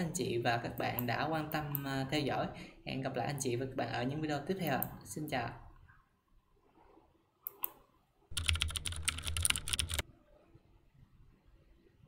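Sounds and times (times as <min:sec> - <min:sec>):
rapid keyboard typing: 0:08.3 - 0:10.0.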